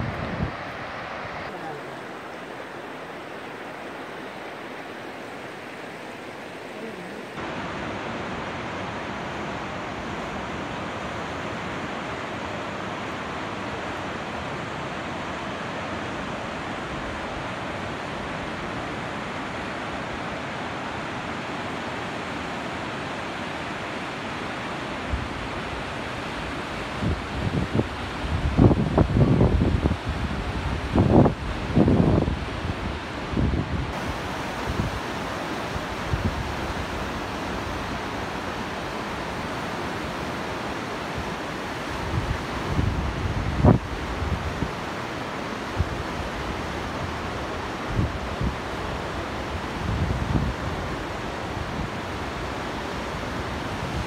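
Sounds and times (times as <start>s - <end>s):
wind buffeting microphone: 0.0s - 1.5s, 25.1s - 38.8s, 41.9s - 44.9s, 47.8s - 52.4s
river rapids rushing: 0.0s - 54.0s.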